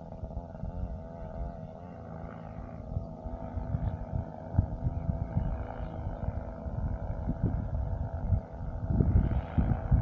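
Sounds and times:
steady pitched drone: 0.0s - 10.0s
wind buffeting microphone: 2.8s - 10.0s.

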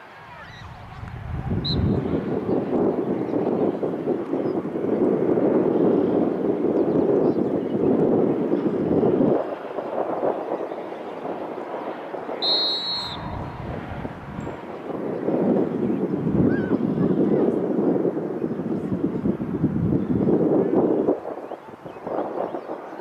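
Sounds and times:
wind buffeting microphone: 0.0s - 23.0s
referee's whistle blast: 1.6s - 2.0s, 12.4s - 13.4s.

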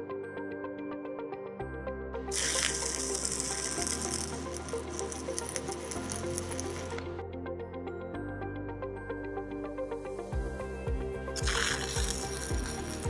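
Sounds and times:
welding arc crackling: 2.3s - 7.0s, 11.4s - 13.0s.

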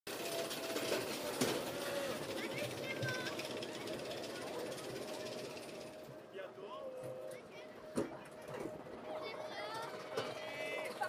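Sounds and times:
coaster car rattling on track: 0.1s - 6.2s, 7.8s - 11.0s
thin steady whine: 0.9s - 11.0s.

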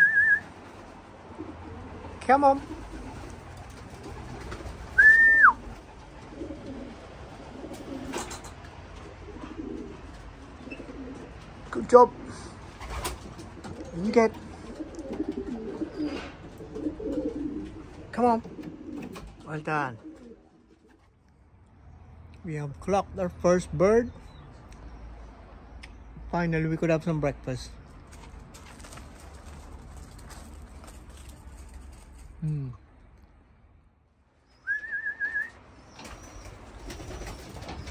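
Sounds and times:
pigeons cooing: 0.0s - 21.1s, 35.8s - 37.9s.

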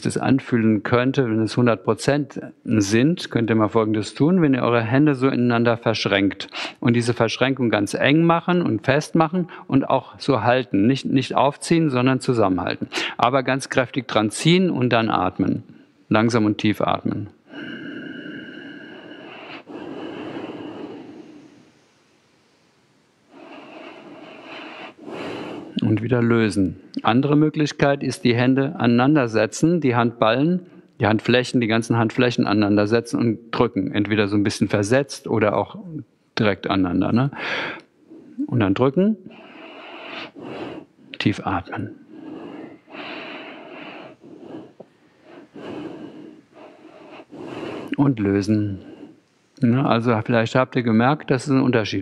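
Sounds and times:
man breathing slowly and deeply: 17.4s - 22.5s, 23.2s - 25.8s, 37.4s - 38.4s, 39.3s - 41.2s, 41.8s - 49.3s.

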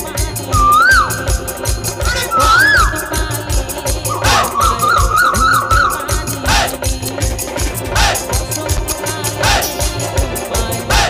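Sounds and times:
drum beat: 0.0s - 11.0s
jingling percussion: 0.0s - 11.0s
trilling high melody: 0.5s - 6.8s.

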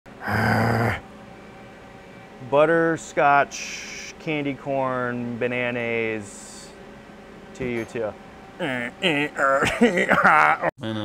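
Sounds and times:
faint background hum: 0.1s - 11.0s
man groaning: 0.2s - 1.0s, 8.6s - 9.7s, 10.8s - 11.0s.

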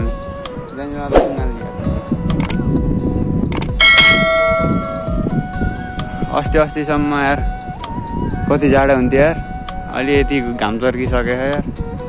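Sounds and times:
click: 2.3s - 2.6s, 3.4s - 3.8s
bright bell ringing: 3.8s - 5.1s.

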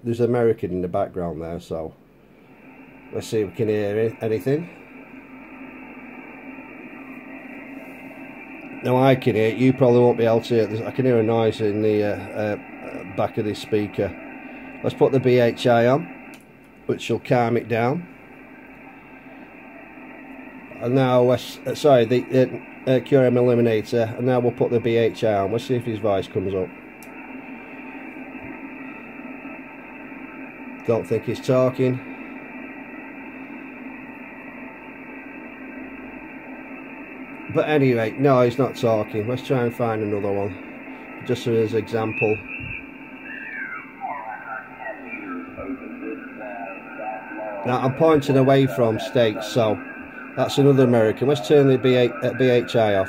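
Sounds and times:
radio static hiss: 0.0s - 53.0s
garbled radio voice signals: 8.7s - 16.2s, 37.4s - 53.0s.

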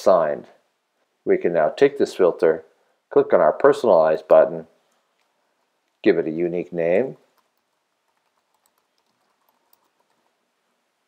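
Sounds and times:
keyboard typing: 7.2s - 10.4s.

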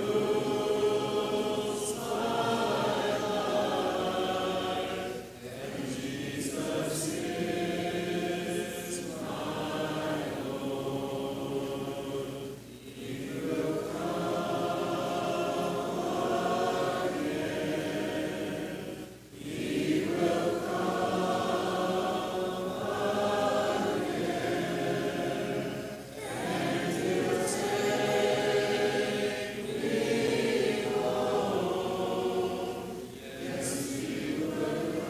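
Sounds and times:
congregation singing a hymn: 0.0s - 35.0s.

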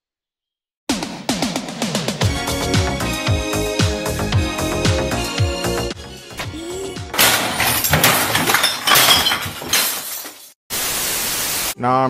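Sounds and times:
glass shattering crash: 7.1s - 10.6s
tv static hiss: 10.7s - 11.8s.

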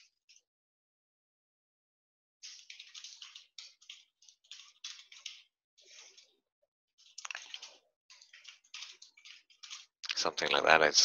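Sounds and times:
faint keyboard typing: 2.4s - 6.3s, 7.0s - 10.7s.

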